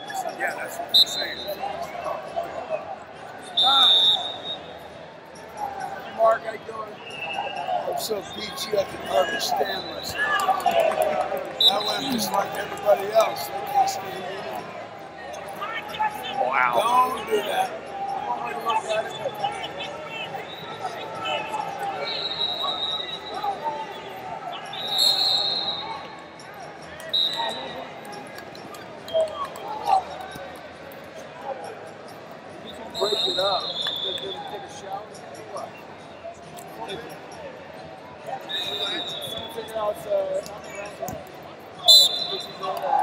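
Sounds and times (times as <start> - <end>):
voices in echoing hall: 0.0 - 43.0
referee whistle blasts: 3.6 - 4.7, 11.6 - 12.4, 22.0 - 23.4, 24.6 - 26.1, 27.1 - 27.8, 32.9 - 34.4, 38.4 - 39.7, 41.8 - 42.6.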